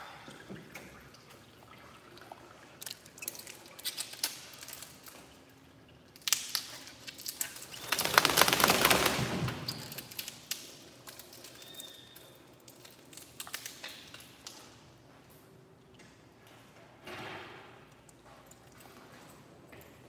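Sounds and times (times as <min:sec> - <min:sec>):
small clicks and splashes: 0:00.4 - 0:09.0, 0:09.6 - 0:14.9
dog shaking water off: 0:07.2 - 0:10.3.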